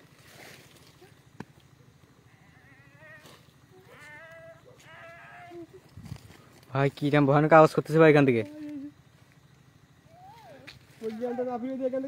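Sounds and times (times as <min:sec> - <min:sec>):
faint quavering cries: 0:00.8 - 0:06.8, 0:10.0 - 0:12.0
man shouting: 0:03.9 - 0:05.8, 0:11.0 - 0:12.0.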